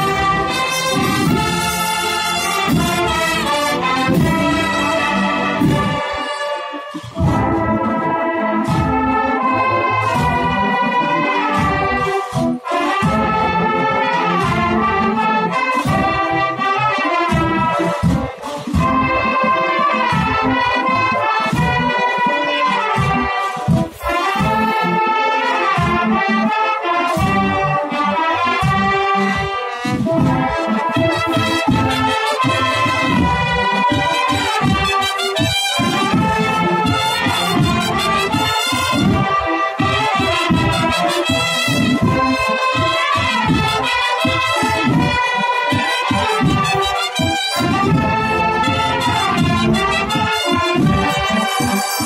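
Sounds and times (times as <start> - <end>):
wind band playing: 0.0 - 52.0.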